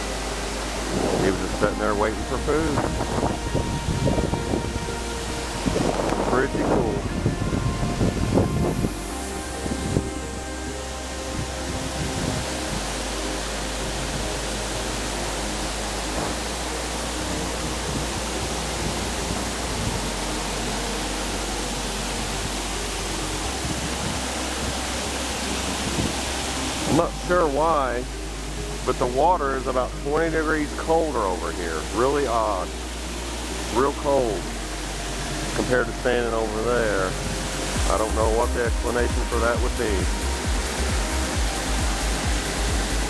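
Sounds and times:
water rushing over dam spillway: 0.0 - 43.0.

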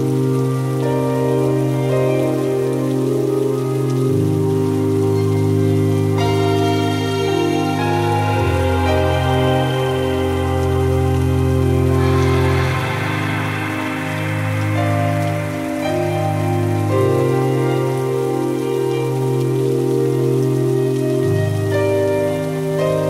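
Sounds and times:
slow ambient music: 0.0 - 23.0
steady rain: 0.0 - 23.0.

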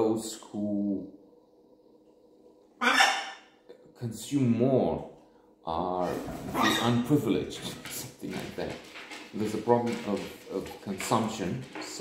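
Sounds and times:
macaw squawk: 2.8 - 3.5.

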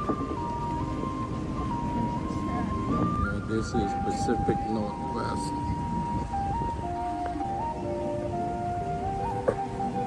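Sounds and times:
slow electronic melody: 0.0 - 10.0
street and wind noise: 0.0 - 10.0.

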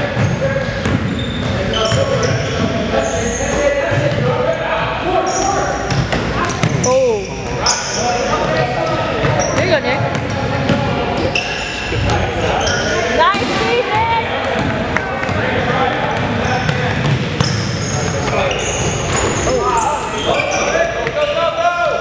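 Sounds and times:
sneaker squeaks: 0.0 - 4.6, 5.2 - 14.1, 16.1 - 21.4
players and spectators calling out: 0.0 - 22.0.

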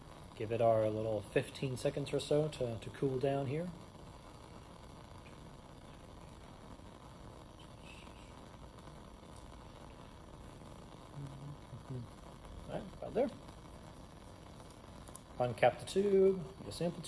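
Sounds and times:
gas flame hissing: 0.0 - 17.0
person humming voice: 11.2 - 12.0.

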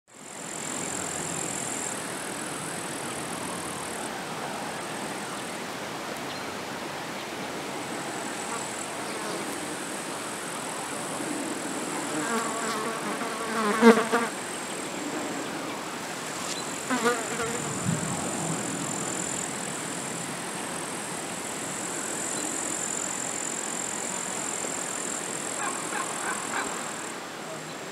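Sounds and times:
insects chirring: 0.2 - 27.9.

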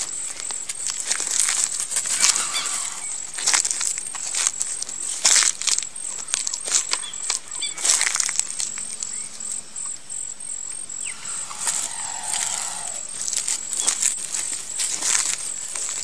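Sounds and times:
short bird call: 11.0 - 13.2
high pulsing tone: 11.0 - 13.3
rustling and crackling: 11.1 - 16.0.

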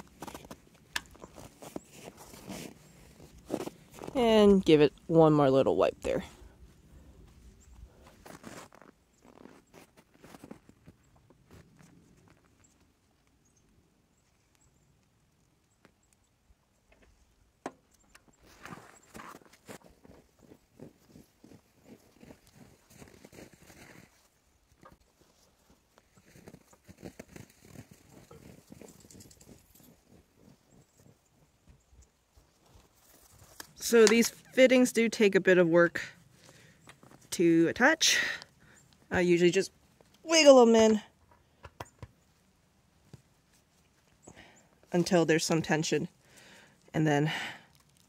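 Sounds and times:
light clicks and crunches: 0.0 - 4.2, 7.3 - 13.6, 16.9 - 31.5, 46.1 - 48.0
rustling of hands in snow: 0.0 - 4.2, 6.3 - 12.8, 32.3 - 33.7.

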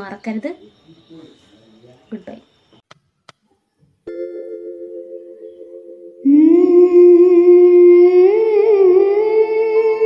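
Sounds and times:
woman singing a held note: 6.2 - 10.0.

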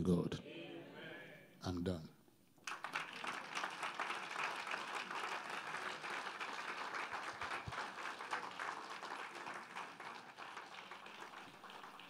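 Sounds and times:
crowd clapping: 2.6 - 12.0.

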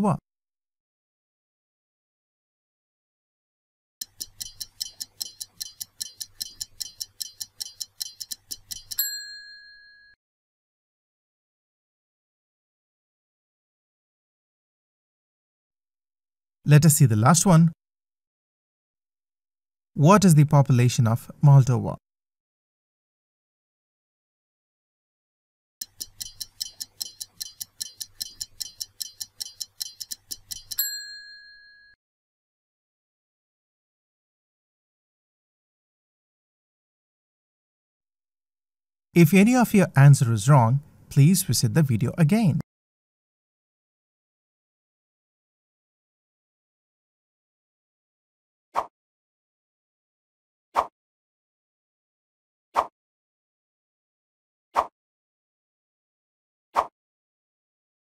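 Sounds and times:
stopwatch ticking: 4.0 - 9.1, 25.8 - 30.9
bell ding: 9.0 - 10.2, 30.8 - 32.0.

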